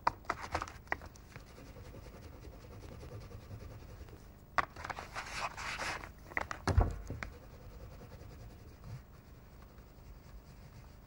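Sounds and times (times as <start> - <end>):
crayon scratching on paper: 1.4 - 4.2, 7.2 - 11.0.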